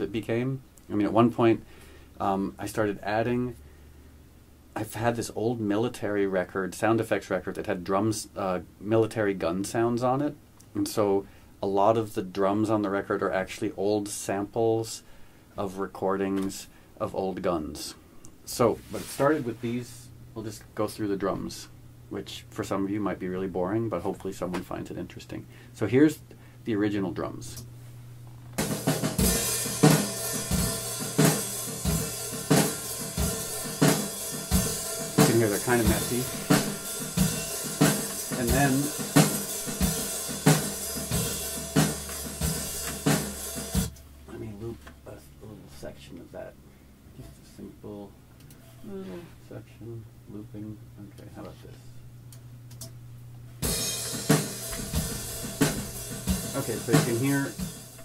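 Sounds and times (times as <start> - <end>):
low steady hum: 0.0 - 58.0
snare drum: 28.6 - 43.9, 53.6 - 58.0
cymbals: 28.6 - 44.0, 53.6 - 58.0.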